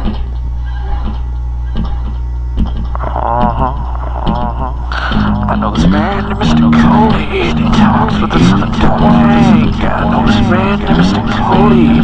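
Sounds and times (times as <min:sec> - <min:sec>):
low steady hum: 0:00.0 - 0:12.0
picked guitar notes: 0:03.0 - 0:12.0.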